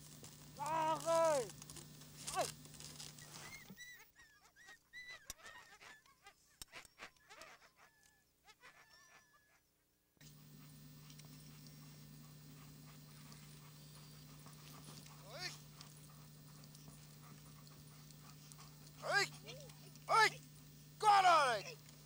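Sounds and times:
steady low hum: 0:00.0 - 0:03.8, 0:10.2 - 0:22.0
dogs whining: 0:02.2 - 0:06.2, 0:10.2 - 0:22.0.

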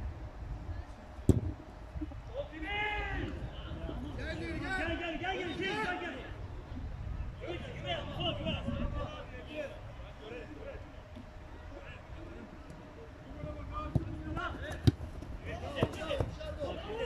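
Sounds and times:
football kicks on artificial turf: 0:01.2 - 0:01.6.

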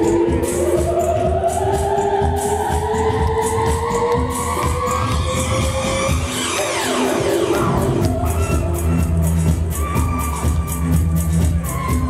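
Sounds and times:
backing track with steady beat: 0:00.0 - 0:12.0.

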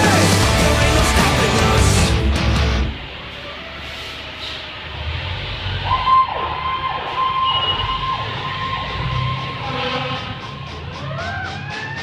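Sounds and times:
fire engine siren: 0:03.1 - 0:12.0.

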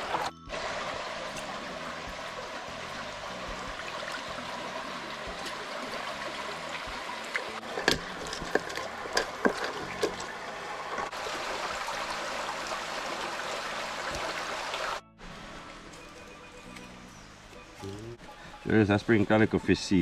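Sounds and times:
water trickling and splashing: 0:00.0 - 0:20.0.

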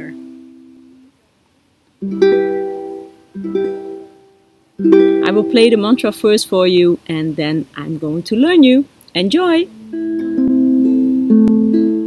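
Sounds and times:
ukulele chords ringing: 0:00.0 - 0:01.1, 0:02.0 - 0:06.2, 0:09.6 - 0:12.0.

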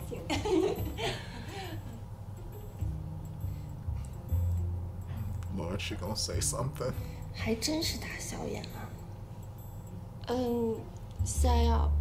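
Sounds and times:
woman speaking: 0:00.0 - 0:00.4, 0:07.4 - 0:09.0, 0:10.2 - 0:12.0.

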